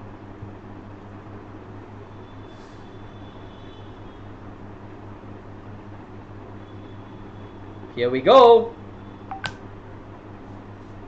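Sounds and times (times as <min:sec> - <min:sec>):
electronic blip: 0:09.3 - 0:09.6
sharp click: 0:09.3 - 0:09.6.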